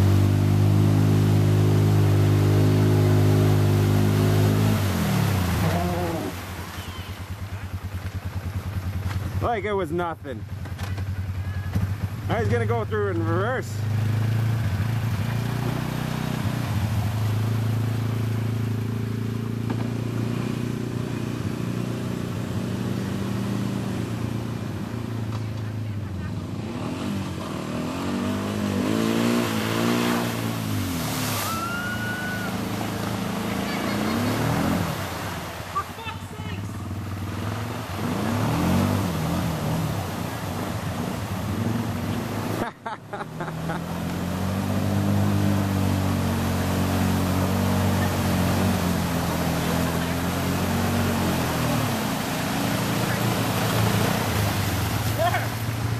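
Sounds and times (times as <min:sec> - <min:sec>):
quad engines revving: 0:00.0 - 0:08.0, 0:10.6 - 0:55.9
wheels spinning in water: 0:30.2 - 0:42.6, 0:43.7 - 0:55.9.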